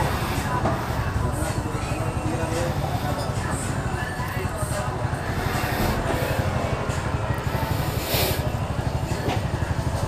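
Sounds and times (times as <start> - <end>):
low engine rumble: 0.0 - 10.0.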